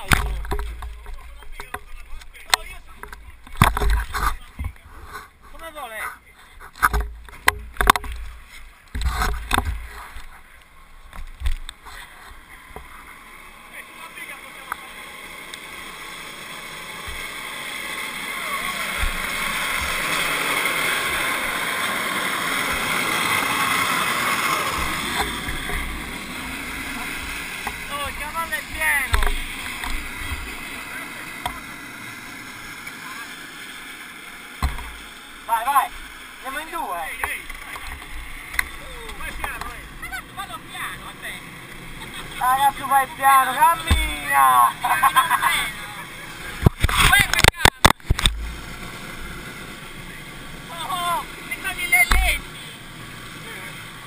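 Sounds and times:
handling thumps and knocks: 0:00.0 - 0:05.6, 0:06.6 - 0:10.3, 0:34.6 - 0:35.1, 0:43.8 - 0:44.2
kart wheels rolling on asphalt: 0:00.0 - 0:54.0
faint indistinct voices: 0:07.8 - 0:16.2.

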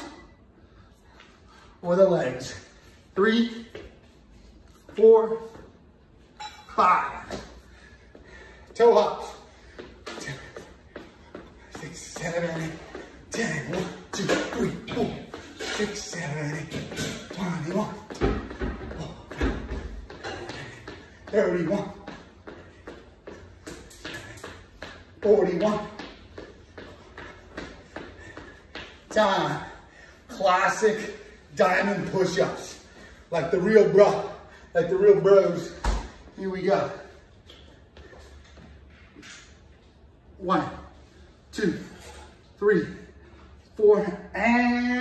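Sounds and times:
man counting breathily: 0:07.0 - 0:18.1, 0:28.1 - 0:37.2.

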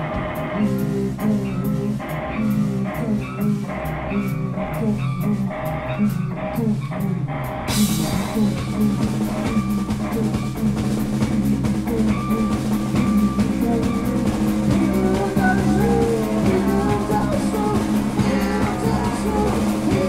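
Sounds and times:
rock band playing live: 0:00.0 - 0:20.0
cymbals: 0:07.7 - 0:20.0.

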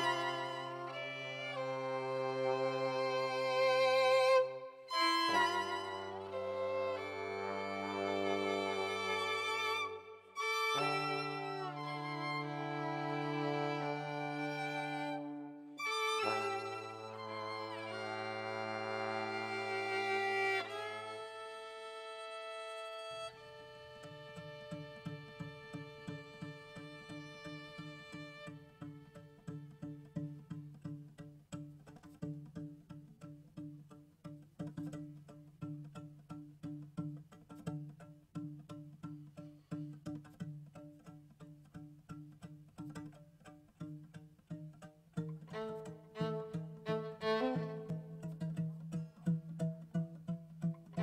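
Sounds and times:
bowed string chord: 0:00.0 - 0:23.2
plucked strings: 0:00.0 - 0:51.0.

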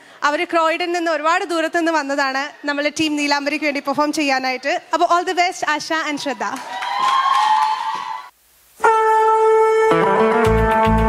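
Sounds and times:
audience applause: 0:06.6 - 0:08.3.

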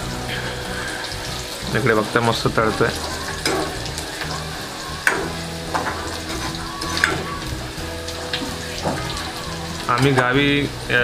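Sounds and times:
onions sizzling in hot oil: 0:00.0 - 0:11.0
steel ladle scraping pan: 0:02.5 - 0:10.5.

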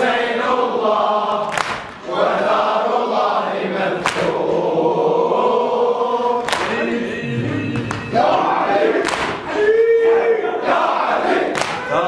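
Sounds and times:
men chanting in unison: 0:00.0 - 0:12.0
sharp slaps: 0:01.5 - 0:02.0, 0:04.0 - 0:04.4, 0:06.5 - 0:06.8, 0:09.0 - 0:09.5, 0:11.5 - 0:11.9.

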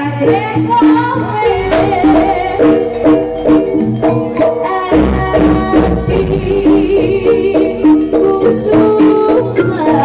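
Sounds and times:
gamelan music: 0:00.0 - 0:10.0
hand drum strokes: 0:01.4 - 0:06.9.

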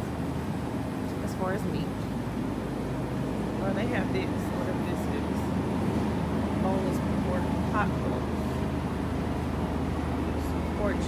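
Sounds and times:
refrigeration hum: 0:00.0 - 0:11.0.

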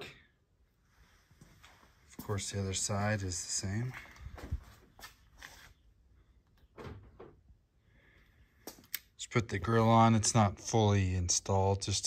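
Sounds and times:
sharp clicks: 0:08.6 - 0:09.1.

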